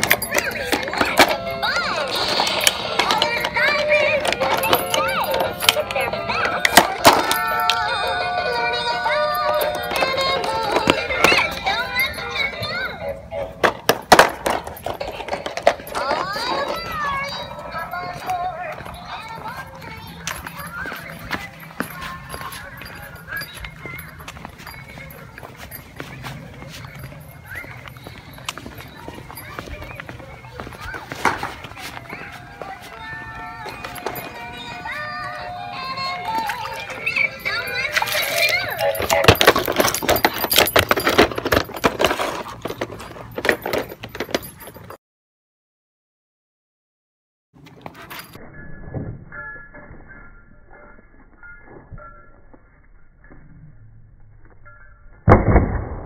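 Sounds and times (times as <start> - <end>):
electronic toy song and voice: 0.0 - 13.6, 31.9 - 39.5.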